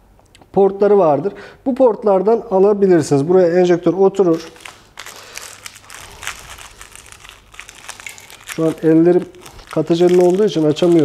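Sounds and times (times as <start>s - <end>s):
plastic packaging crinkling: 4.2s - 11.0s.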